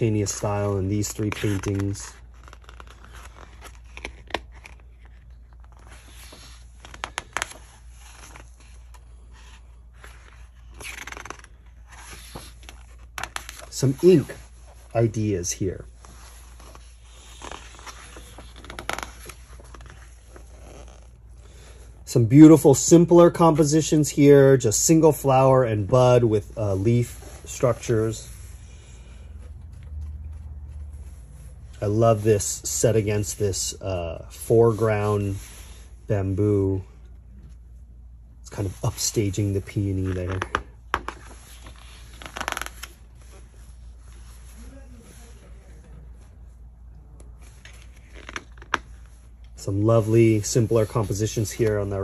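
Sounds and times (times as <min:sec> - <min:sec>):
book pages turning: 0:00.0 - 0:21.6, 0:25.4 - 0:32.2, 0:38.6 - 0:52.0.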